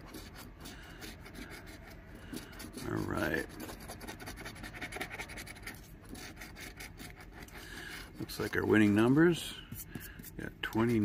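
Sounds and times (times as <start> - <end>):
coin scraping scratch-off ticket: 0.0 - 9.4, 10.7 - 11.0.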